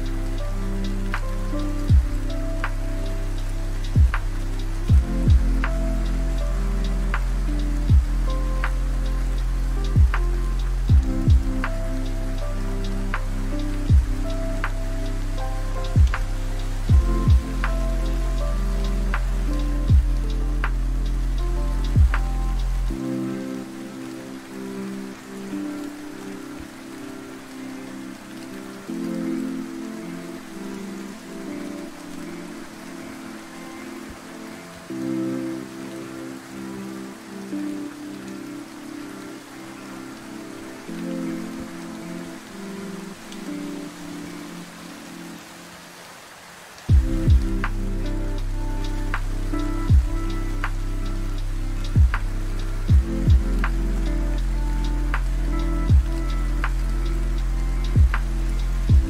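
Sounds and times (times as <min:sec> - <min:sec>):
lo-fi hip hop music: 0:00.0 - 0:46.0, 0:46.7 - 0:59.0
rain on surfaces: 0:00.0 - 0:59.0.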